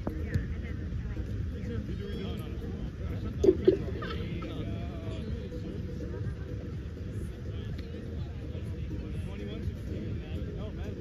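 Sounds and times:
voices of people playing volleyball: 0.0s - 11.0s.

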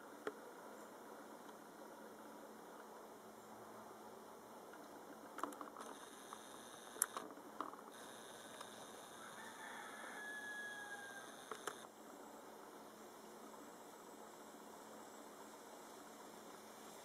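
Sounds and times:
camcorder zoom motor whining: 5.9s - 7.2s, 10.5s - 11.9s.

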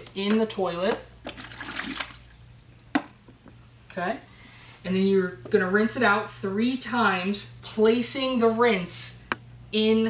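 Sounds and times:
liquid splashing into toilet bowl: 1.2s - 3.6s.

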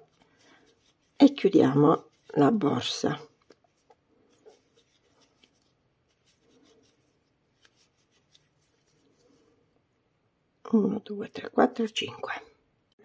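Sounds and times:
crochet hook rubbing yarn: 0.0s - 9.4s.

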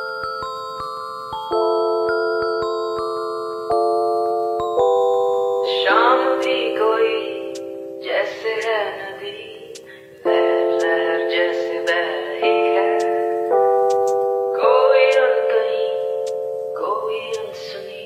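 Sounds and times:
held keyboard chords: 0.0s - 18.0s
wavering high melody: 0.0s - 18.0s.

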